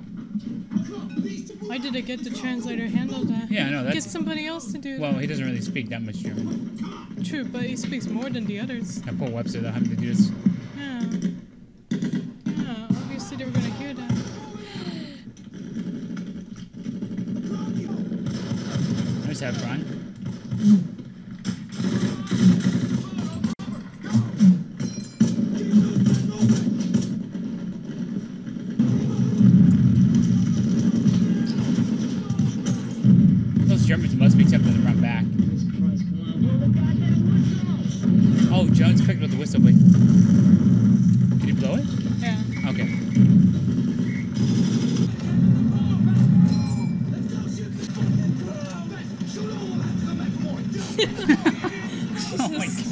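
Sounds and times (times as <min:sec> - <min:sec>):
sharp cracks: 0:05.4 - 0:52.2
battle soundtrack low rumble: 0:33.0 - 0:50.2.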